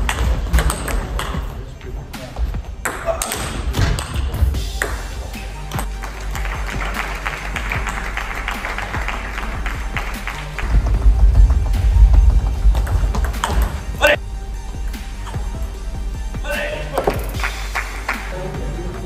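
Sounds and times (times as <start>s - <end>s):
music: 0.0s - 19.0s.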